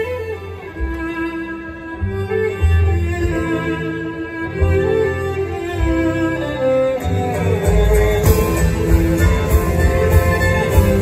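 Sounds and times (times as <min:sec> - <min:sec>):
low bass notes: 0:00.0 - 0:11.0
violin: 0:00.0 - 0:11.0
strummed acoustic guitar: 0:06.9 - 0:11.0.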